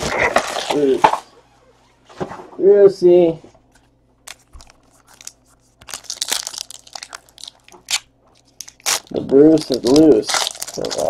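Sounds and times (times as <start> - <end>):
foil wrapper crinkling and tearing: 4.2 - 11.0.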